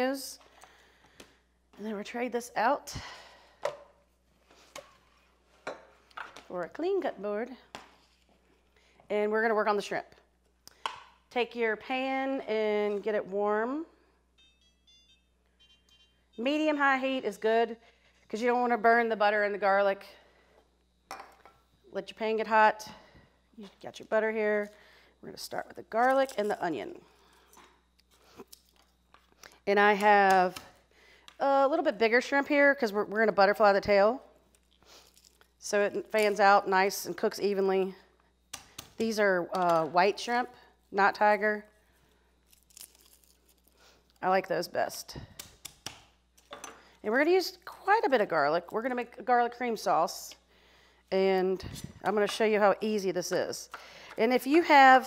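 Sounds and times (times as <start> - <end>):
faint electronic beeps: 14.4 - 16.6
garlic skins crackling and rustling: 41.9 - 44.3.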